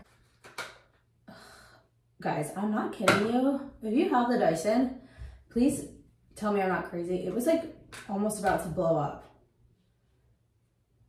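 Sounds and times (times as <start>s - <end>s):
intake of breath: 5.0s - 5.5s.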